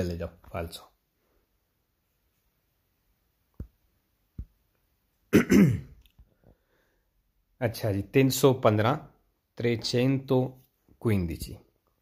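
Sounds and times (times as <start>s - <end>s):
man clearing his throat: 5.3s - 6.0s.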